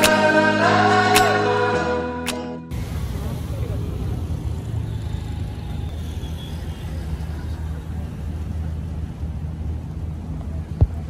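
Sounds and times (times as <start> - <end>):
city street traffic rumble: 2.7 - 11.0.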